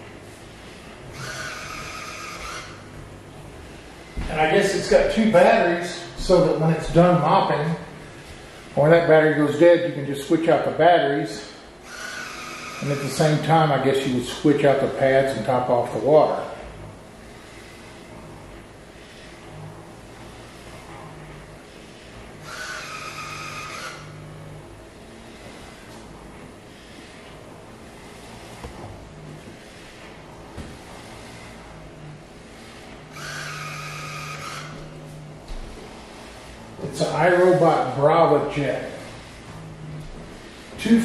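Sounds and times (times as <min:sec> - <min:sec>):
mopping robot motor hum: 0:00.2 - 0:09.0, 0:11.8 - 0:13.7, 0:16.0 - 0:41.0
loud buzz: 0:00.8 - 0:03.4, 0:11.8 - 0:13.6, 0:16.6 - 0:28.9, 0:30.8 - 0:41.0.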